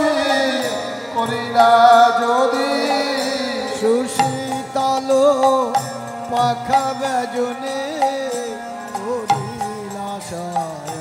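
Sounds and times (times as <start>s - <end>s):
devotional chant-like singing: 0.0s - 11.0s
harmonium: 0.0s - 11.0s.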